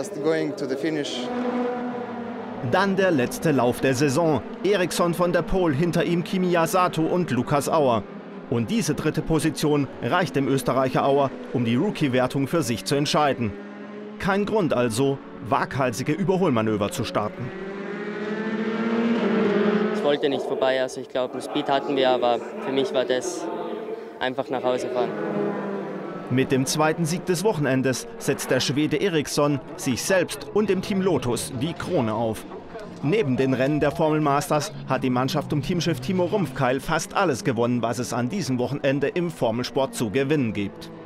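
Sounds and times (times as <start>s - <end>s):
race car engines droning: 0.0s - 41.0s
man's voice: 20.0s - 23.5s, 24.2s - 25.1s, 26.3s - 40.9s.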